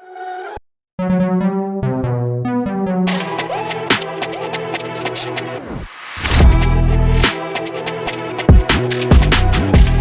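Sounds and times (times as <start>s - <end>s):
sampled melody: 1.0s - 5.6s
rapid hi-hats: 3.1s - 5.5s, 6.4s - 10.0s.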